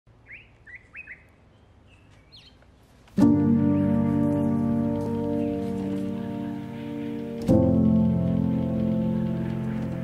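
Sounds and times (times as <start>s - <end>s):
birds chirping: 0.1s - 10.0s.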